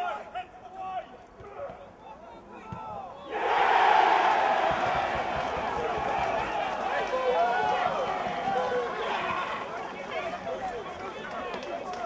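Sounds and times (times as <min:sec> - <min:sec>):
crowd shouts: 0:03.2 - 0:12.0
crowd cheering loudly: 0:03.3 - 0:12.0.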